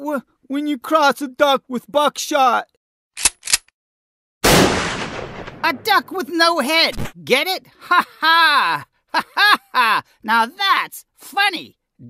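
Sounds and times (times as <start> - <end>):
sharp clicks: 3.2 - 3.7
shotgun blast: 4.4 - 6.1.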